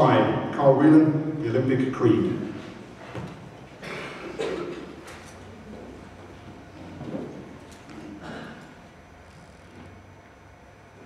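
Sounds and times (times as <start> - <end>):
person coughing: 3.8 - 5.0, 8.0 - 8.8.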